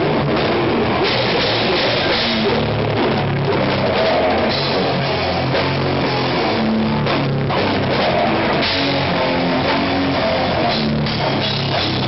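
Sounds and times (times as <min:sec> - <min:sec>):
distorted guitar notes: 0:00.0 - 0:12.0
fast dense drumming: 0:00.0 - 0:12.0.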